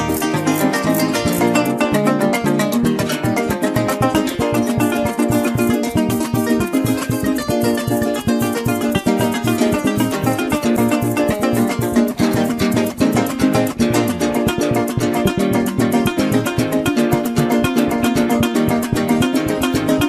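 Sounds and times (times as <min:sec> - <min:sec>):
fast strummed and plucked strings: 0:00.0 - 0:20.0.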